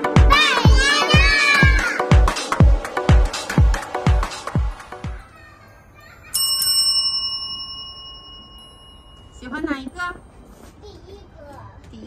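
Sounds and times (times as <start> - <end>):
small bright bell ringing: 5.3 - 11.2.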